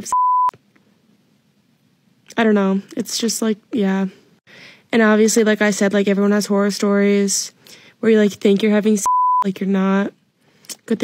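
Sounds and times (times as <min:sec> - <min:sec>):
censor bleep: 0:00.0 - 0:00.5, 0:09.0 - 0:09.5.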